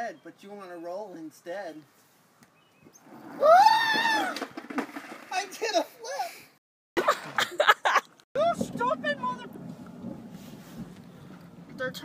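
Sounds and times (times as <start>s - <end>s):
person yelling: 3.4s - 4.4s.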